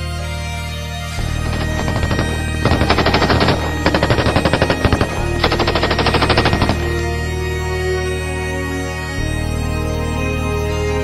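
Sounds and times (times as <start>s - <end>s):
background music: 0.0s - 11.0s
machine-gun fire: 1.3s - 7.3s.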